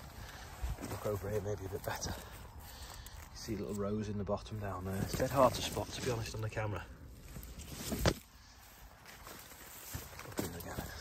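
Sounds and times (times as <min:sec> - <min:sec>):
footsteps: 0:00.0 - 0:03.8, 0:07.2 - 0:11.0
wheat plants rustling: 0:00.0 - 0:11.0.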